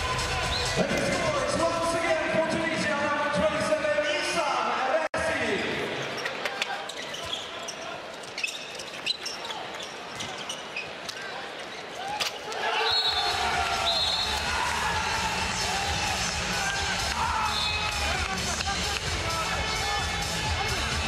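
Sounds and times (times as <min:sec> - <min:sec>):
arena crowd noise: 0:00.0 - 0:21.0.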